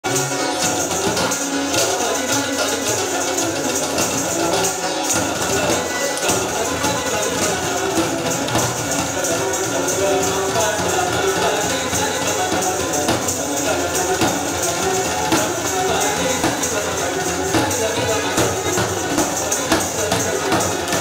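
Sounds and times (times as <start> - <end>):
keyboard: 0.0 - 21.0
sitar: 0.0 - 21.0
steady percussion beat: 0.0 - 21.0.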